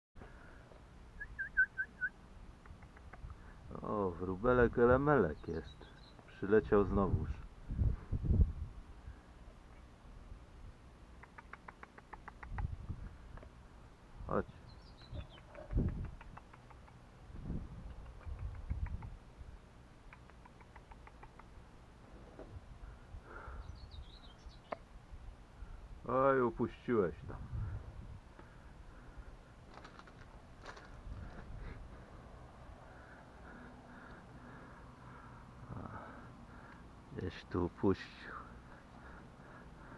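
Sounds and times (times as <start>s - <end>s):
person whistling short notes: 1.2s - 2.2s
sparrow chirp: 5.1s - 6.4s, 14.4s - 17.0s, 23.4s - 24.9s.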